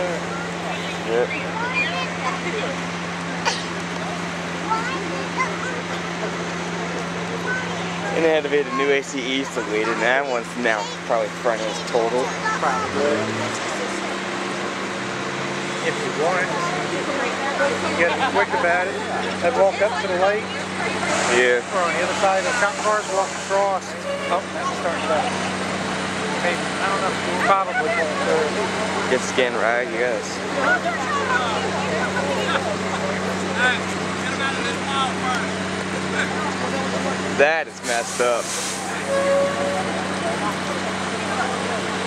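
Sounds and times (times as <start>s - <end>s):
bystanders talking: 0.0s - 42.0s
diesel engine idling: 0.0s - 42.0s
outdoor noise: 0.0s - 42.0s.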